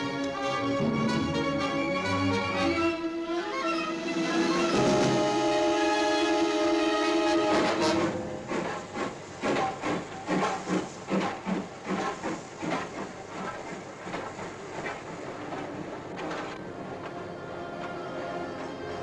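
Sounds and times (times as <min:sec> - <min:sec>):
orchestral music: 0:00.0 - 0:09.0, 0:16.5 - 0:19.0
steam train rumbling: 0:00.0 - 0:19.0.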